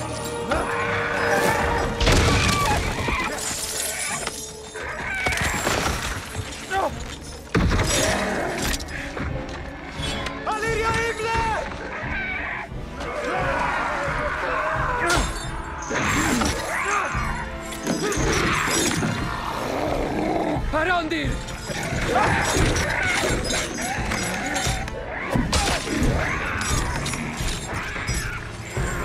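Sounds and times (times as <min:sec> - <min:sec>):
orchestral score music: 0:00.0 - 0:04.9, 0:06.2 - 0:29.0
wooden roots cracking and crashing: 0:02.0 - 0:09.6
snarls and yells: 0:10.4 - 0:20.7, 0:21.6 - 0:29.0.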